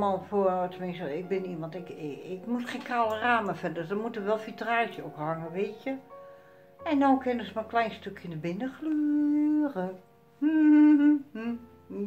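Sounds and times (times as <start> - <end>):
woman humming: 10.4 - 12.0.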